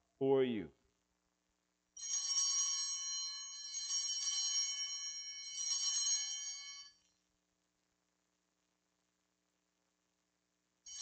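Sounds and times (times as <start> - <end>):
altar bells ringing: 2.0 - 7.0.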